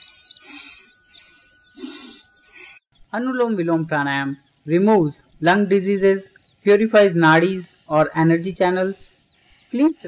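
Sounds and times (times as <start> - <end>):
hissing nasal breaths: 0.0 - 3.0, 5.6 - 10.0
faint birds calling: 0.0 - 10.0.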